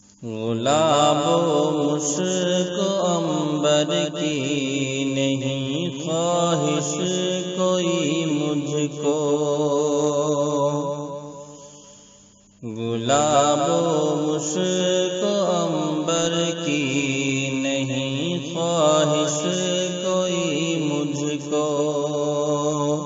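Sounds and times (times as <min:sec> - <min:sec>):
person singing devotional song: 0:00.0 - 0:23.0.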